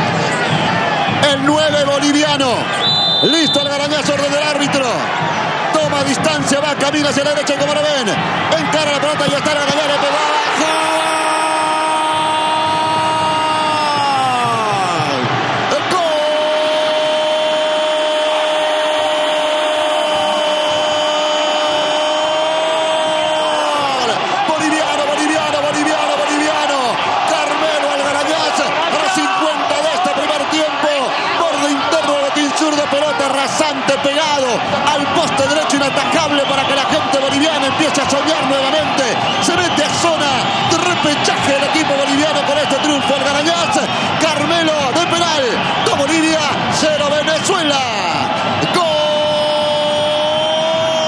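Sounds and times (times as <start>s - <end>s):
commentator's drawn-out goal cry: 1.1s - 51.0s
man shouting excitedly: 1.2s - 5.0s, 5.7s - 51.0s.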